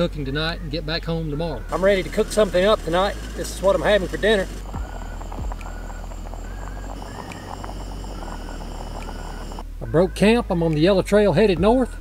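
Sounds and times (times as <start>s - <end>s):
camping stove hissing: 1.6s - 9.6s
water bubbling: 1.7s - 9.6s.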